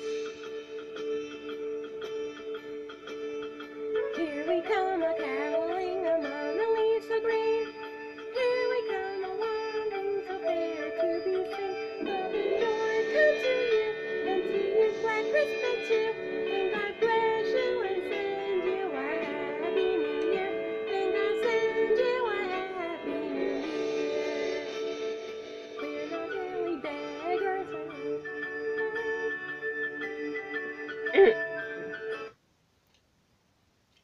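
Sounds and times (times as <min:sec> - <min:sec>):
backing music: 0:00.0 - 0:32.3
woman singing: 0:04.0 - 0:25.0, 0:25.8 - 0:31.4.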